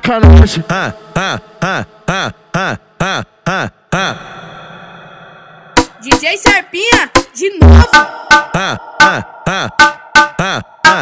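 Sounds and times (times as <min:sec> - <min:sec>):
funk beat with swooping synth note: 0:05.8 - 0:11.0.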